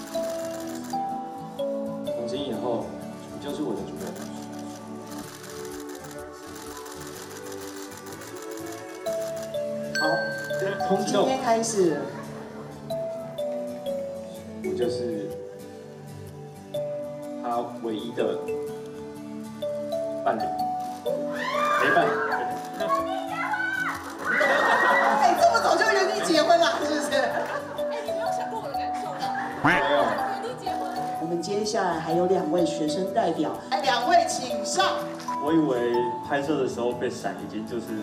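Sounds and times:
background music with held notes: 0:00.0 - 0:38.0
audience screaming: 0:21.3 - 0:25.4
man's voice: 0:29.6 - 0:30.2.

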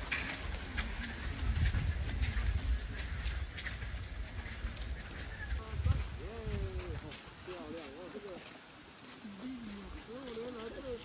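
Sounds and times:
wind on microphone: 0:00.0 - 0:07.4.

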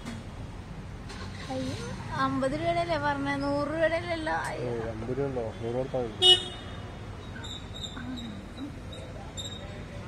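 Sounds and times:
vehicle horn toot: 0:06.2 - 0:06.8.

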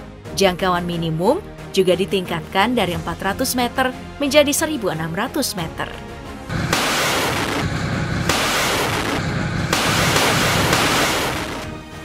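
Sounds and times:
background music: 0:00.0 - 0:12.0
loud rushing noise: 0:06.5 - 0:11.6.

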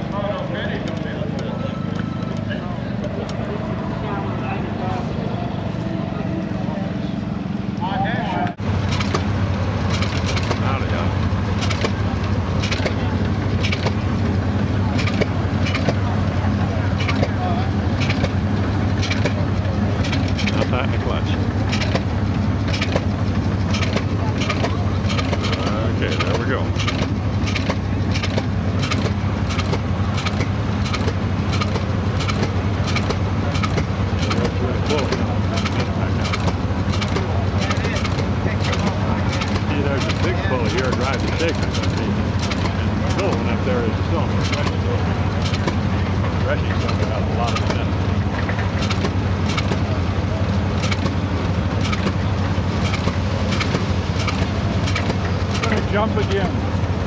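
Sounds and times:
low hum of machinery: 0:00.0 - 0:57.0
stationary gas engine knocking: 0:08.6 - 0:57.0.

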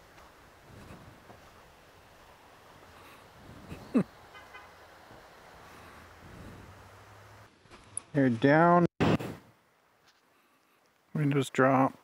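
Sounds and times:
faint hiss of creek: 0:00.0 - 0:08.6.

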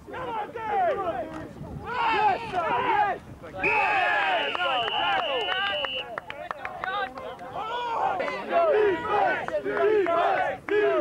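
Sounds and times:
people shouting: 0:01.8 - 0:06.1, 0:07.6 - 0:11.0
referee's whistle long blast: 0:03.6 - 0:06.2.

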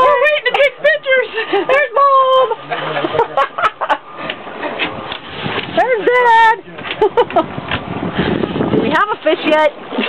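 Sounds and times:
people's voices: 0:00.0 - 0:05.1
rushing background noise: 0:00.0 - 0:10.0.

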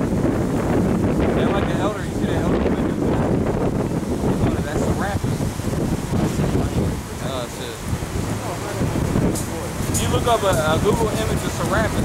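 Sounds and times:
wind buffeting microphone: 0:00.0 - 0:12.0
faint voices: 0:01.2 - 0:12.0.

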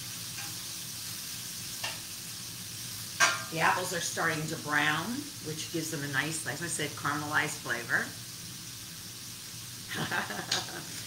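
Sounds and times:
food sizzling in a frying pan: 0:00.0 - 0:11.0
woman talking: 0:03.5 - 0:08.2
woman laughing: 0:09.9 - 0:11.0.

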